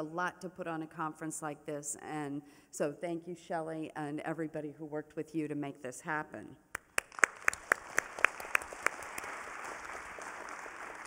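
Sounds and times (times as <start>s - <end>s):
close hand claps: 6.7s - 11.0s
audience applause: 7.0s - 11.0s.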